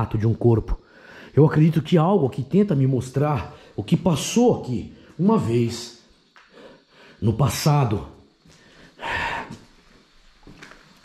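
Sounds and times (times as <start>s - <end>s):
breathy exhale: 0.8s - 1.4s, 6.4s - 7.2s, 8.5s - 9.6s.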